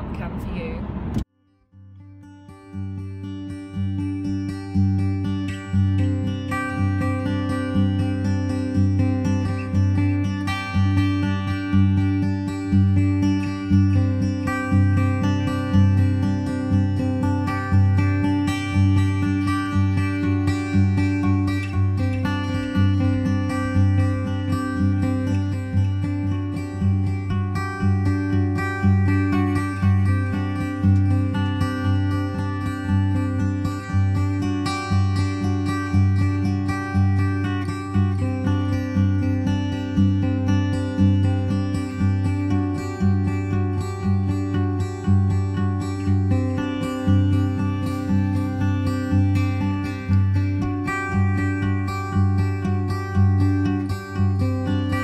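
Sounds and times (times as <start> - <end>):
acoustic guitar piece: 0.0 - 55.0.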